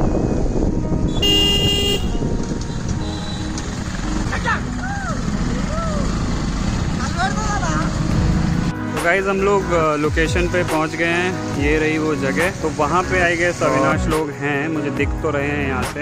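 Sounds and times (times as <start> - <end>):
motorcycle engine running: 0.0 - 8.7
vehicle horn toot: 1.1 - 3.6.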